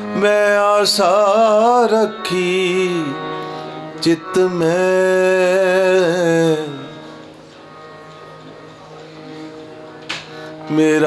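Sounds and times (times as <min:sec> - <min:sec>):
held instrumental notes: 0:00.0 - 0:11.0.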